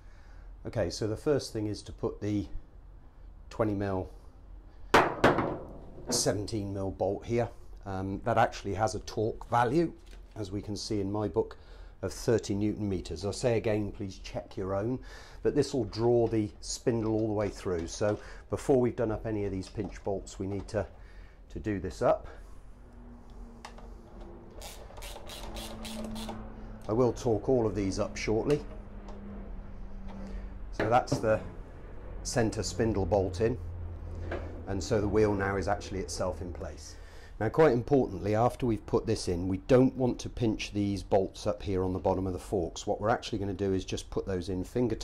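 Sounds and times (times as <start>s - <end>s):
socket ratchet clicking: 24.6s - 26.4s.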